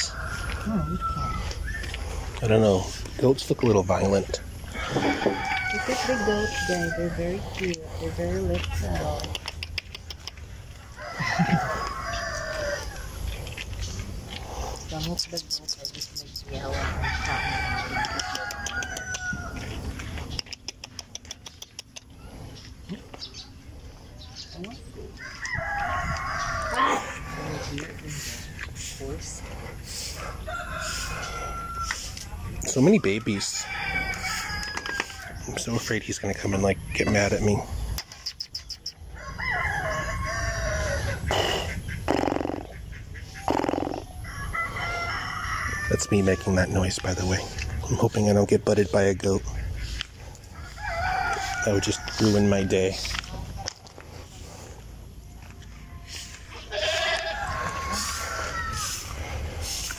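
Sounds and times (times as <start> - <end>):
rooster crowing: 0.0 - 1.9, 4.7 - 7.4, 10.9 - 13.2, 16.7 - 19.8, 25.2 - 27.7, 30.2 - 32.2, 32.8 - 35.5, 39.1 - 41.3, 44.2 - 46.8, 50.5 - 53.0, 56.7 - 59.2
man imitating animal calls: 41.1 - 42.8, 43.4 - 44.2.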